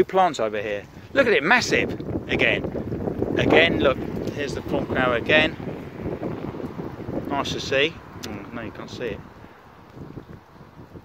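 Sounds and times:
wind rumbling on microphone: 0.0s - 11.0s
person speaking: 3.4s - 5.6s, 7.3s - 9.3s.

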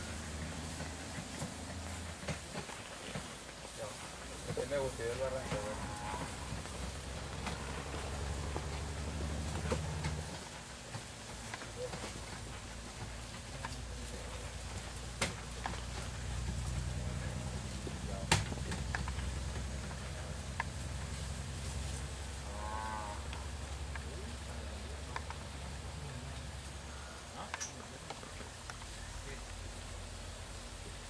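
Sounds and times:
low droning hum: 3.8s - 10.5s.

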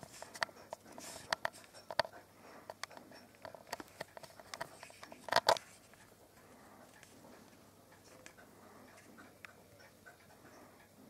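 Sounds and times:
hedgehog clicking and ticking: 0.0s - 11.0s.

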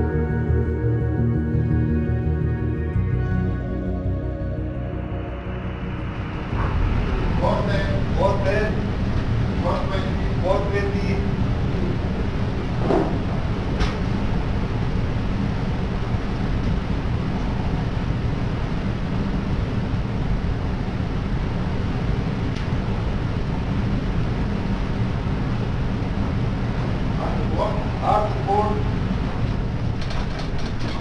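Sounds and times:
low rumble and hiss: 0.0s - 31.0s.

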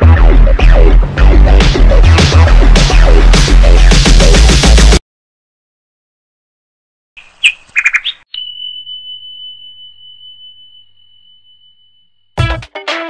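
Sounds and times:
high chirps and clicks: 7.2s - 12.4s
high ding: 8.3s - 12.4s.

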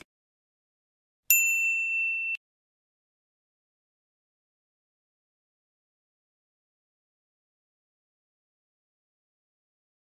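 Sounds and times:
notification bell ding: 1.3s - 2.4s.

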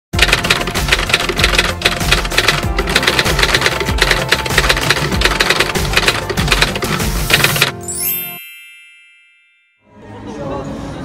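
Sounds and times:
typewriter keystroke clicks: 0.2s - 7.8s
background music: 0.2s - 8.6s.

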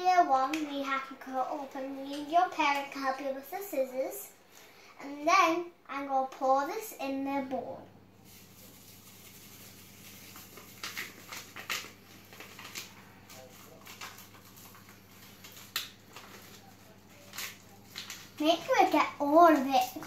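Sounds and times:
powder pattering into bowl: 8.2s - 18.8s
packet crackles: 8.2s - 20.0s
sachet crinkling: 8.2s - 20.0s.

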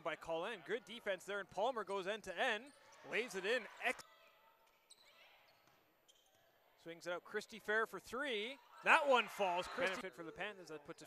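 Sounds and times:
faint basketball gym ambience: 0.0s - 11.0s.

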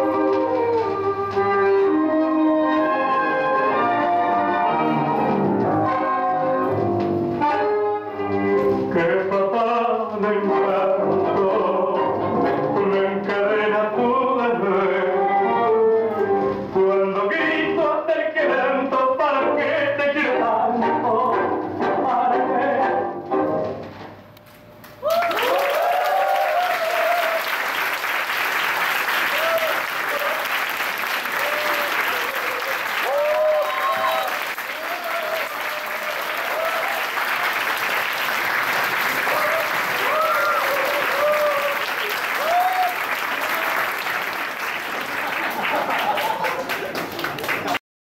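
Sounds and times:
cheering shouts and whoops: 25.0s - 27.5s, 29.3s - 30.4s, 31.4s - 37.5s, 39.3s - 43.9s
audience applauding: 25.0s - 47.8s.

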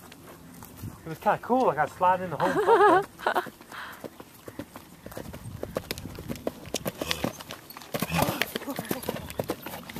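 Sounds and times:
horse hoofbeats on hard ground: 3.0s - 9.9s.

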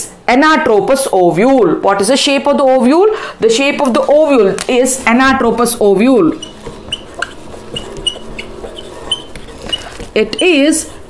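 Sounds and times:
marker squeaking on whiteboard: 5.3s - 11.0s.

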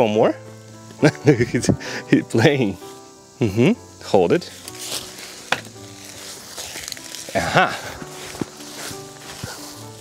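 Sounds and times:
crackly rustling on pine needles: 2.2s - 10.0s.

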